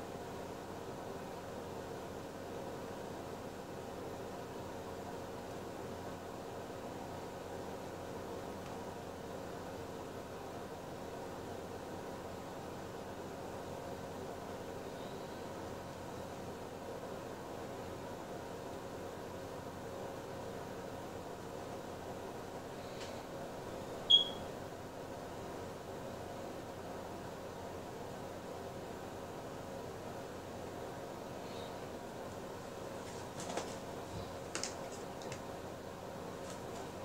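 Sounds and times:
faint low hum: 0.0s - 37.0s
room hiss: 0.0s - 37.0s
sharp high-pitched chirp: 24.1s - 24.5s.

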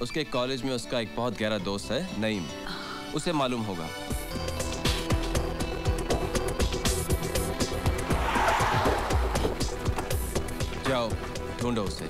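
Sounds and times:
background music with steady beat: 0.0s - 12.0s
cars pulling up fast: 7.4s - 10.3s
tyre skid: 8.0s - 9.7s.

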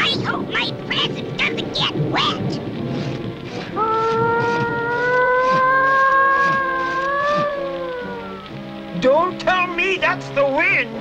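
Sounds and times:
rain hiss: 0.0s - 11.0s
wavering moan-like voice: 3.7s - 8.5s
long wailing tone: 3.7s - 8.6s
cartoon music: 3.8s - 8.6s.

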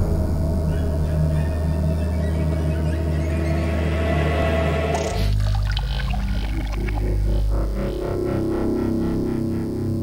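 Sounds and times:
dark synth drone music: 0.0s - 10.0s.

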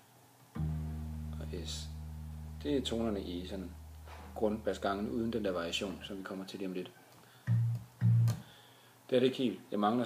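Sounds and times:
plucked bass guitar notes: 0.6s - 6.2s, 7.5s - 8.4s.

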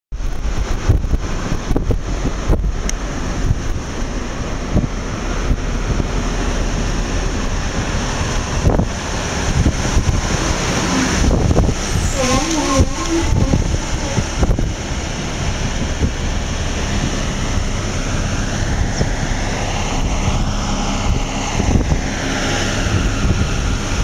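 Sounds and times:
vehicle road noise: 0.1s - 24.0s
wind buffeting microphone: 0.1s - 24.0s.

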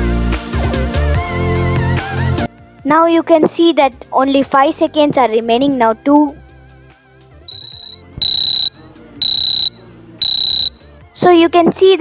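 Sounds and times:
high-pitched alarm beeps: 7.5s - 10.8s
soft beep: 7.5s - 10.8s.

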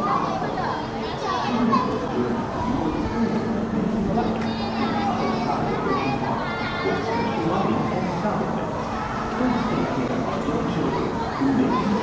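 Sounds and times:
children's voices: 0.0s - 12.0s
crowd chatter: 0.0s - 12.0s.

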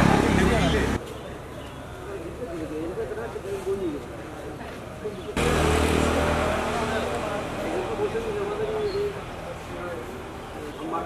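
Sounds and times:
voices talking outdoors: 0.0s - 11.0s
engine running: 5.4s - 8.7s.

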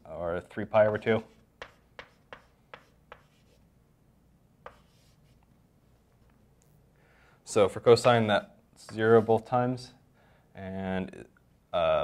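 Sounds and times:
chalk tapping on blackboard: 0.8s - 3.6s, 4.6s - 5.4s.

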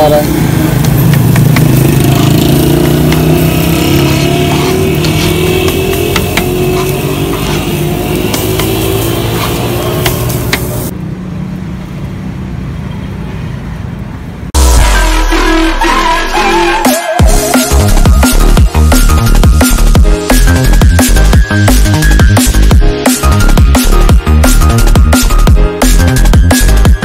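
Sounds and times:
loud electronic music: 0.0s - 10.9s, 14.6s - 27.0s
metal scraper on griddle: 2.8s - 10.9s.

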